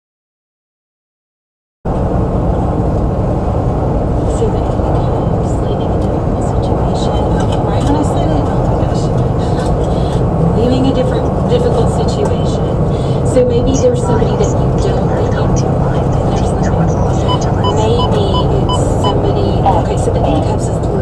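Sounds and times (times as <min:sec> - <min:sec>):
car engine and road noise: 0:01.9 - 0:21.0
faint voice: 0:04.2 - 0:21.0.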